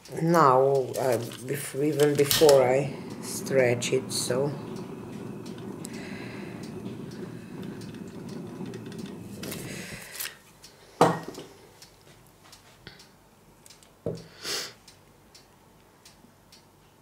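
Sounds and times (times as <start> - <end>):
gas torch burning: 0.0 - 10.4.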